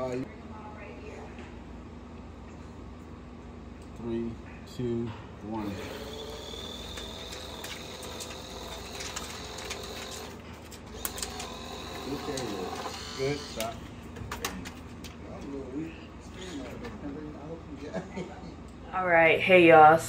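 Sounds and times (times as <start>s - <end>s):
money gun whirring: 5.6s - 13.7s
paper bills fluttering: 5.8s - 13.4s.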